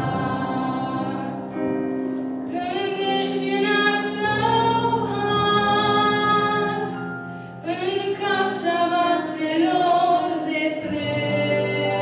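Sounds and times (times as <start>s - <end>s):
woman singing a hymn: 0.0s - 1.8s, 2.5s - 7.0s, 7.6s - 12.0s
piano accompaniment: 0.0s - 12.0s.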